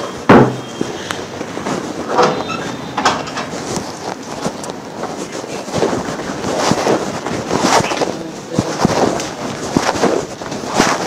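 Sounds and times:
knocks and rustles: 0.0 - 11.0.

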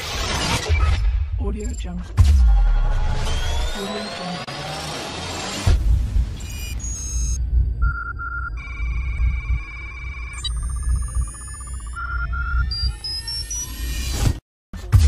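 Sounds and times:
electronic beeps and data tones: 0.8 - 2.0, 6.3 - 14.4
deep steady rumble: 7.4 - 11.7.

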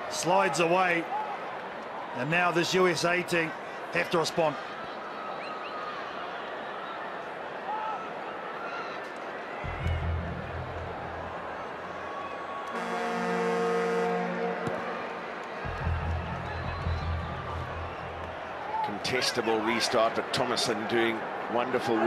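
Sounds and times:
stadium crowd noise: 0.0 - 22.0
low rumble: 9.7 - 12.4, 14.3 - 18.6
loud hooter horn note: 12.7 - 18.4.

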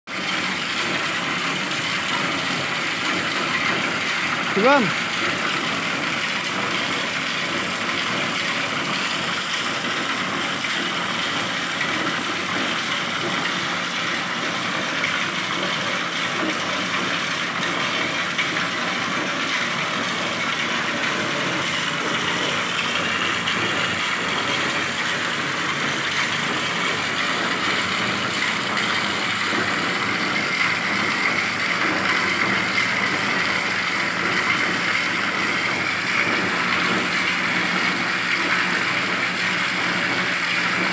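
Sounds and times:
motorised sprayer running: 0.1 - 40.9.

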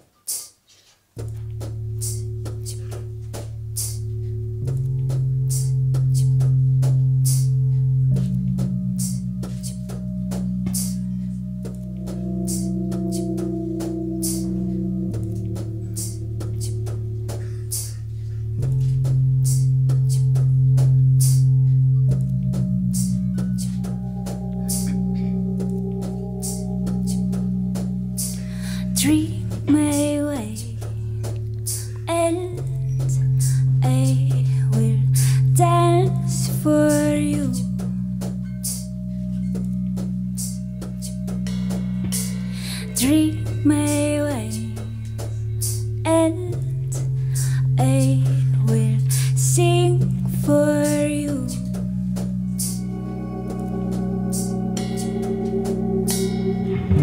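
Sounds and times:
low keyboard chords: 1.2 - 57.0
ticking drum beat: 1.2 - 57.0
person singing: 28.2 - 30.9, 31.7 - 37.7, 47.6 - 51.7.

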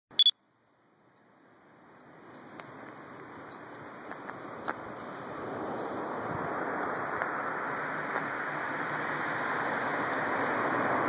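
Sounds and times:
camcorder beep: 0.1 - 0.4
faint outdoor background noise: 0.1 - 11.0.

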